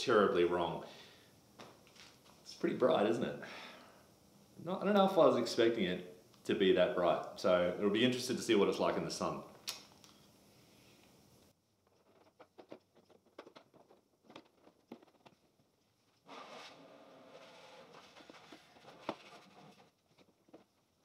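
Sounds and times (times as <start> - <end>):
plastic bag rustling: 11.9 - 21.0.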